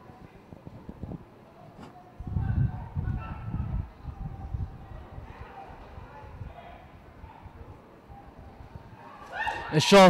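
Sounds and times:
low stadium background: 0.0 - 10.0.

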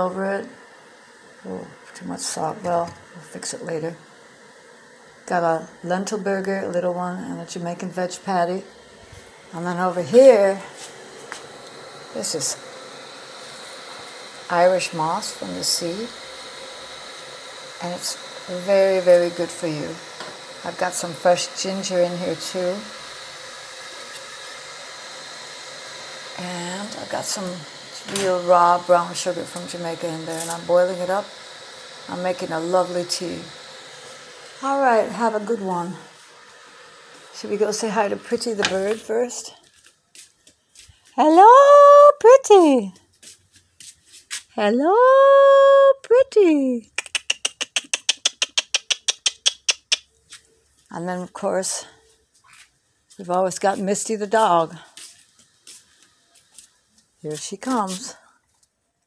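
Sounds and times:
gas burner hissing: 0.0 - 43.4, 48.2 - 58.4.

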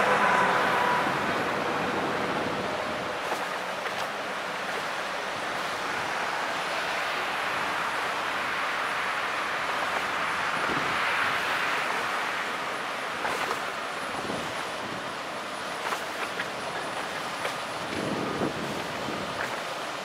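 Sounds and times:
ship diesel engine drone: 0.0 - 20.0.

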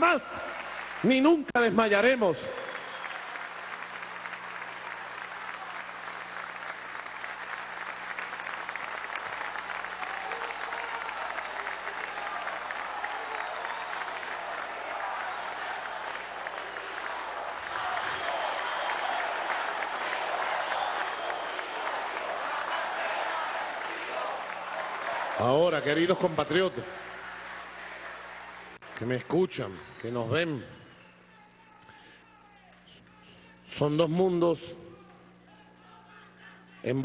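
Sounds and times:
large audience applauding: 0.0 - 32.9.

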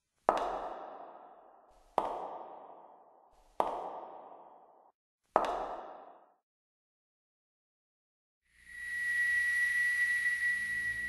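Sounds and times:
high-pitched whistle-like tone: 8.5 - 11.0.

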